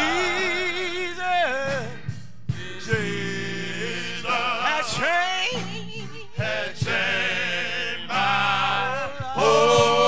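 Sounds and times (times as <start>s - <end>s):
man singing gospel: 0.0s - 10.0s.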